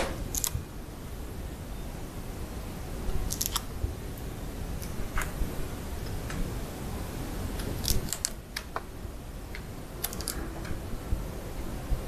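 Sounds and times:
low steady rumble: 0.0 - 12.0
pliers clicking and snapping branch: 0.3 - 0.6.

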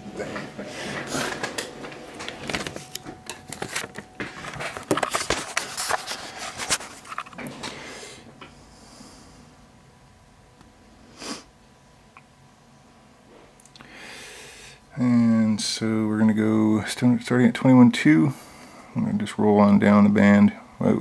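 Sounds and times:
radio gear handling clicks and rustles: 1.2 - 7.7.

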